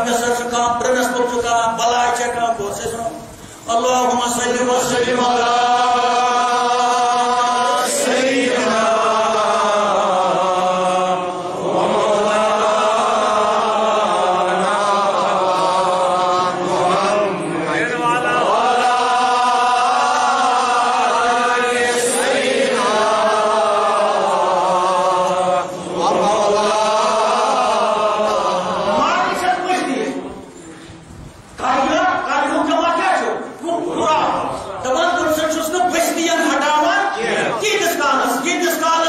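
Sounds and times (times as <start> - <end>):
man chanting: 0.0 - 11.4, 12.0 - 30.4, 31.6 - 39.0.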